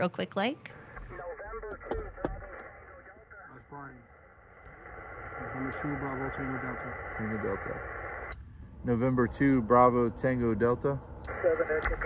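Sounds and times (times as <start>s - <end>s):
receiver hiss: 0.7s - 12.0s
muffled voice through radio speaker: 1.0s - 4.0s, 4.9s - 8.2s, 8.9s - 12.0s.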